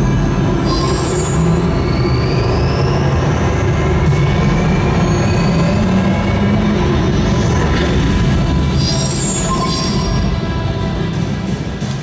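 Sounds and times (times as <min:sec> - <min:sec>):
deep steady rumble: 0:02.5 - 0:12.0.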